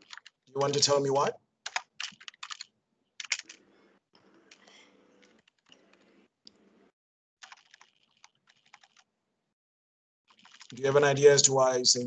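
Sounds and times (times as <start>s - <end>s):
computer keyboard typing: 0.0s - 3.6s, 4.4s - 6.1s, 7.4s - 9.1s, 10.3s - 10.9s.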